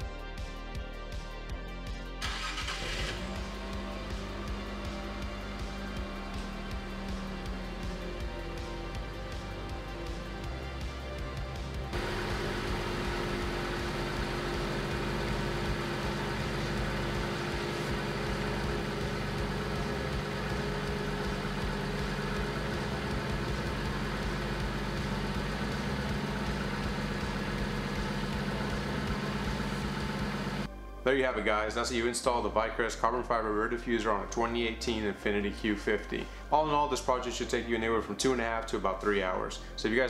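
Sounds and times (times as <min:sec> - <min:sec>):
background music: 0:00.0 - 0:40.0
car engine idling: 0:02.2 - 0:30.7.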